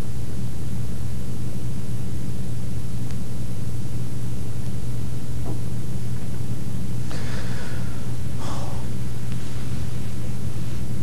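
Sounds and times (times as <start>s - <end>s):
low electrical hum and hiss: 0.0s - 11.0s
man breathing: 7.0s - 9.0s.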